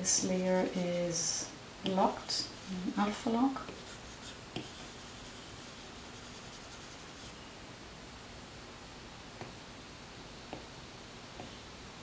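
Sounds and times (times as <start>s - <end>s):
stylus rubbing on glass screen: 3.6s - 7.4s.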